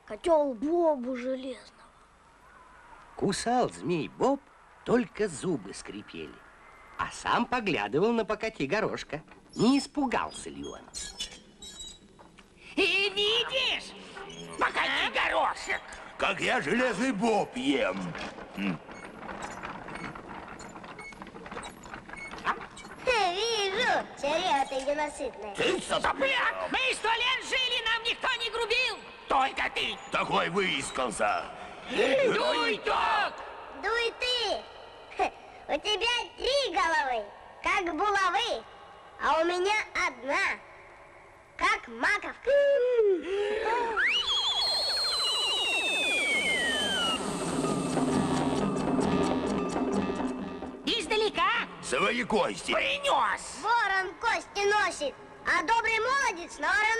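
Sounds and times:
shrill swooping whistle: 44.0s - 48.0s
falling sweep of lower tones: 44.0s - 48.8s.

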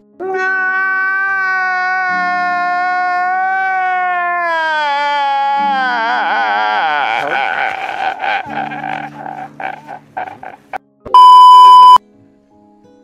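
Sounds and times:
man laughing hysterically: 6.0s - 10.8s
loud electronic beep: 11.1s - 12.0s.

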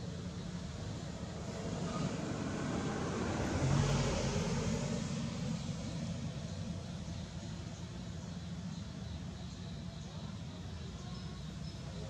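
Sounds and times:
vehicle passing by: 0.4s - 7.6s.

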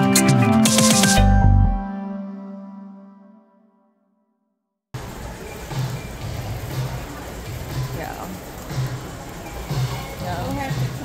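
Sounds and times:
hubbub of shoppers: 5.0s - 11.0s.

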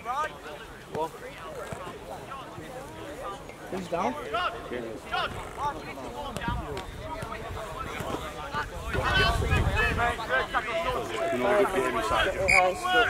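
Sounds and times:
people talking and calling: 0.0s - 13.0s
wind rumble on microphone: 6.3s - 10.4s.

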